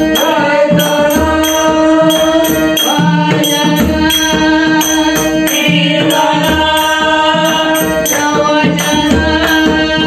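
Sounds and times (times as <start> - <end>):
harmonium holding notes: 0.0 - 10.0
sung chant: 0.0 - 10.0.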